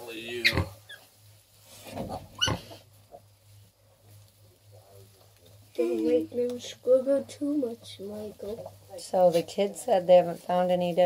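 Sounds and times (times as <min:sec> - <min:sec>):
low steady hum: 0:00.0 - 0:11.0
piglet squealing: 0:00.4 - 0:01.0, 0:02.4 - 0:02.8.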